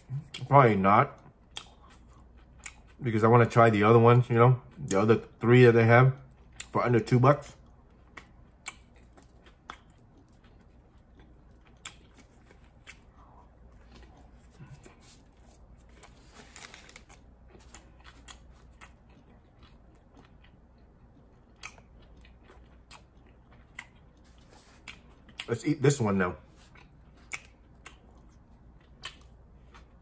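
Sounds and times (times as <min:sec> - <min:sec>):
person chewing food: 0:00.0 - 0:00.5, 0:01.1 - 0:03.1, 0:06.2 - 0:30.0.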